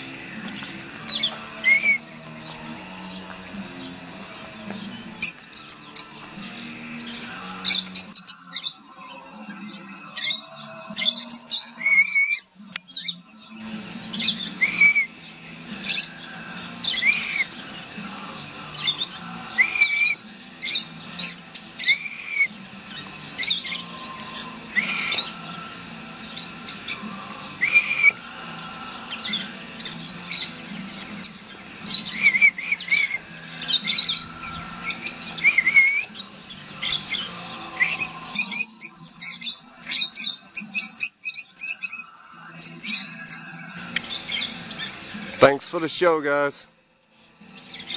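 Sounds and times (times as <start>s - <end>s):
lovebirds chirping and squeaking: 0.0s - 47.9s.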